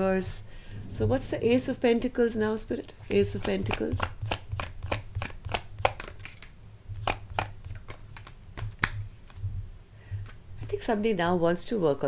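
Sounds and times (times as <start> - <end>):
cards being shuffled: 3.1 - 9.4.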